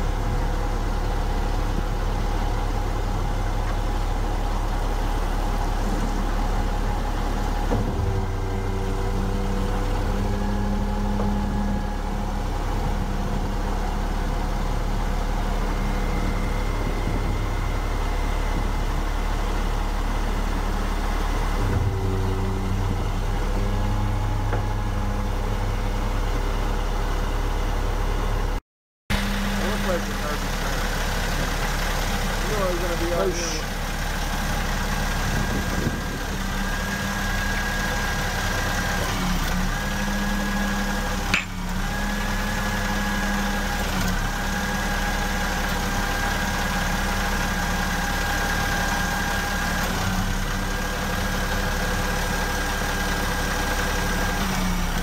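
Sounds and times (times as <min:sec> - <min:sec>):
truck engine idling: 0:00.0 - 0:55.0.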